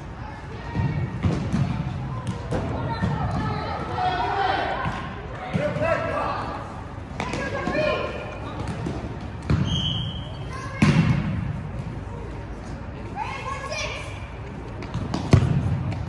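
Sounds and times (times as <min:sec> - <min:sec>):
players shouting in gym: 0:02.3 - 0:08.5
ball kicks and thuds: 0:08.6 - 0:09.8.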